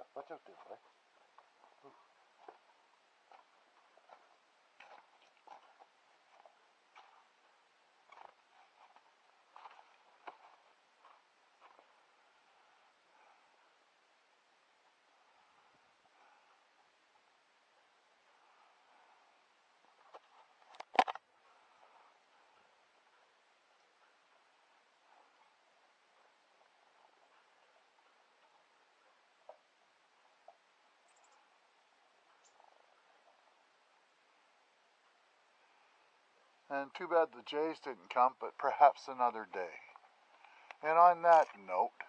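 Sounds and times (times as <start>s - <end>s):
faint background hiss: 0.0s - 42.0s
faint light ticks and crunches: 0.1s - 13.8s, 14.8s - 34.4s, 39.5s - 42.0s.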